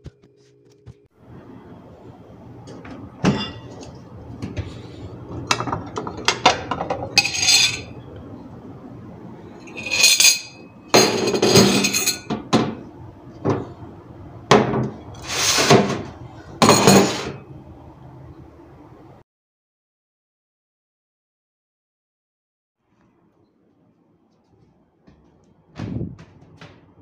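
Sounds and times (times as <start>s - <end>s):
dishes and cutlery clattering: 3.2s - 4.0s, 5.5s - 7.9s, 9.7s - 12.8s, 16.6s - 17.4s.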